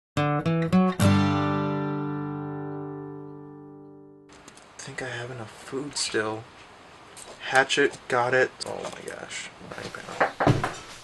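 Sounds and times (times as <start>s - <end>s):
acoustic guitar: 0.2s - 4.3s.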